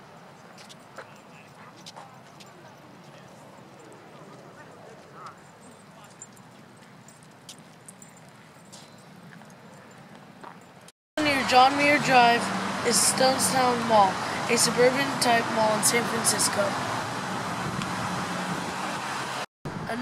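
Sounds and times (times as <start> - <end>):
faint distant voices: 0.9 - 7.1.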